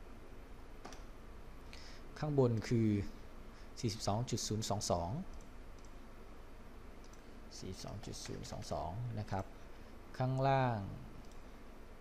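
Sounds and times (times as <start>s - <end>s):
faint mouse clicks: 0.8s - 1.1s, 5.3s - 6.0s, 7.0s - 8.5s, 11.2s - 11.5s
person speaking: 7.5s - 11.2s.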